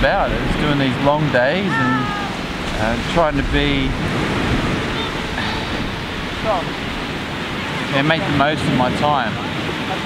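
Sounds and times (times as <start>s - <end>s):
waves washing onto beach: 0.0s - 10.0s
wind on microphone: 0.0s - 10.0s.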